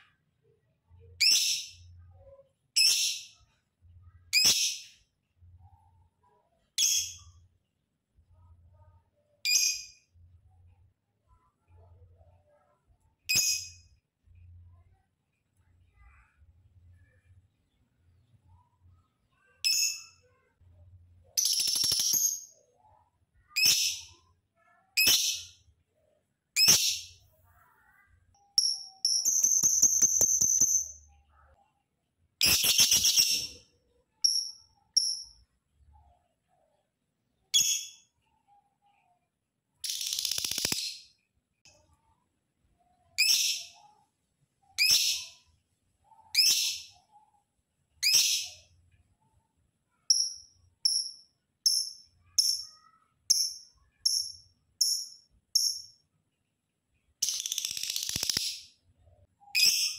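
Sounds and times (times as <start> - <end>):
lovebird shrill calls and chattering: 21.4 - 22.5, 39.8 - 41.0, 57.2 - 58.7.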